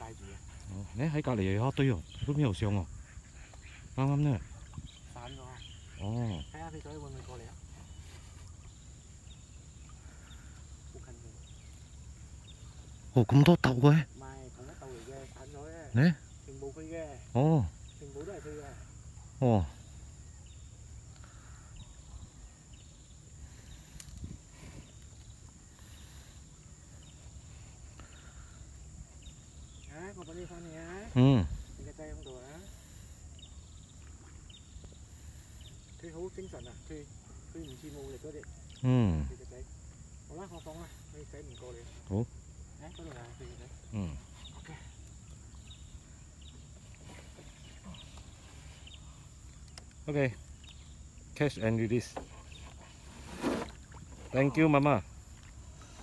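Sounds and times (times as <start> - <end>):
high insect drone: 0.0 - 56.0.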